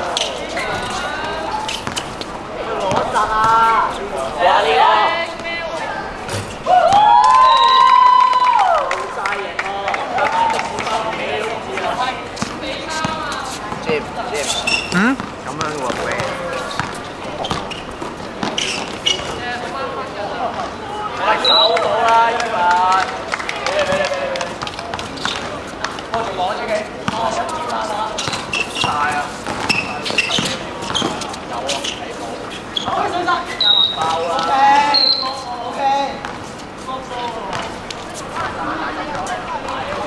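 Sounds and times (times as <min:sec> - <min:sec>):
players shouting and talking: 0:00.0 - 0:40.0
basketball bouncing: 0:01.8 - 0:03.7, 0:15.0 - 0:17.8, 0:28.2 - 0:31.2.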